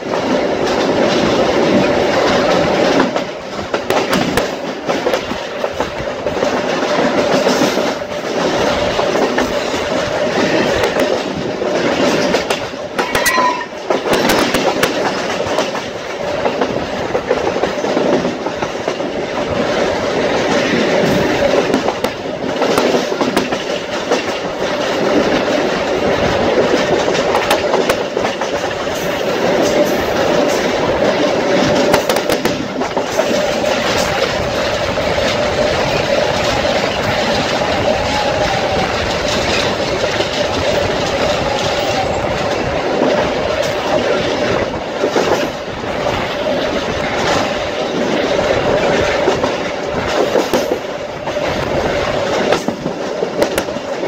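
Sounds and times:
train rumbling: 0:00.0 - 0:54.0
wheels clicking over rails: 0:00.0 - 0:54.0
brief high tone: 0:13.0 - 0:13.8.

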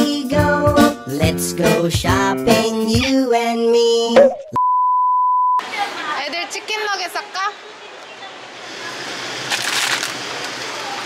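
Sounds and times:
children's-style song sung: 0:00.0 - 0:04.5
electronic censor beep: 0:04.6 - 0:05.6
voices: 0:05.6 - 0:09.3.

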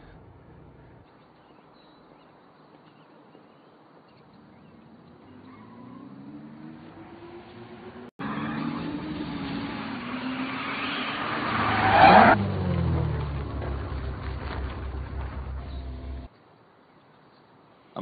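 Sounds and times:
car engine accelerating: 0:04.8 - 0:16.3
car engine idling: 0:12.4 - 0:16.3.

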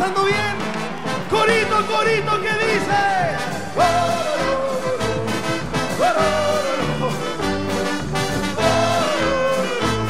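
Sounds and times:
trumpets and saxophones melody: 0:00.1 - 0:10.0
bass notes: 0:00.3 - 0:10.0.

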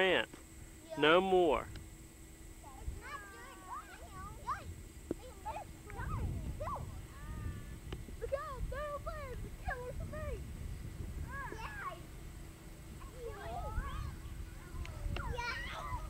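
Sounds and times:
distant voices calling and chattering: 0:00.0 - 0:16.0.

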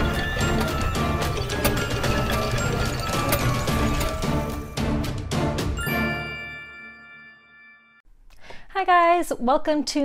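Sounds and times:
gears ratcheting clicks: 0:00.0 - 0:04.6.

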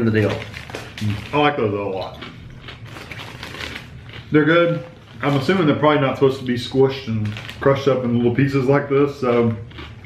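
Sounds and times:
potato chips crunching: 0:00.0 - 0:10.0.

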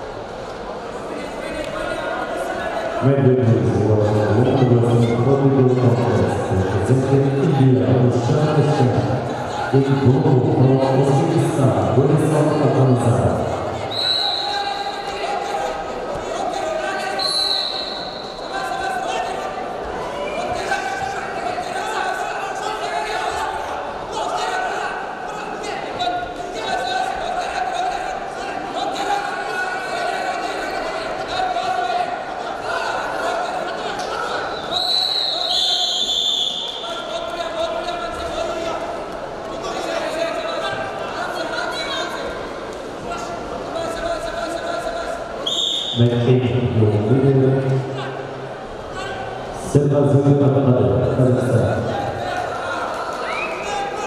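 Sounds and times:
voices shouting in a hall: 0:00.0 - 0:54.0
referee's whistle blast: 0:13.9 - 0:15.0, 0:17.1 - 0:18.5, 0:34.6 - 0:36.8, 0:45.4 - 0:46.1.

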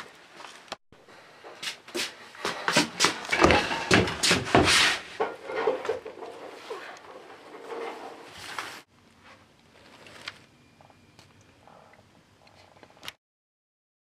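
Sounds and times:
rustling: 0:02.4 - 0:10.5
knocks and bumps: 0:02.7 - 0:08.2.

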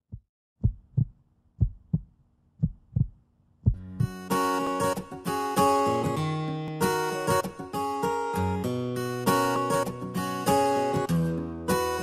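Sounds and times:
low heartbeat-like thumps: 0:00.0 - 0:04.2
plucked acoustic guitar music: 0:03.8 - 0:12.0.

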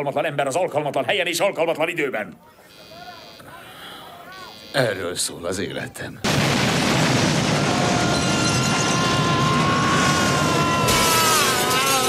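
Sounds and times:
explosion rumble: 0:06.2 - 0:11.2.

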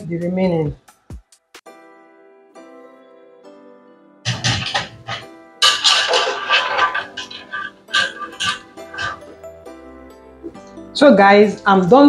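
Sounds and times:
strainer scraping in a pot: 0:04.3 - 0:09.3
piano music: 0:04.3 - 0:09.5.

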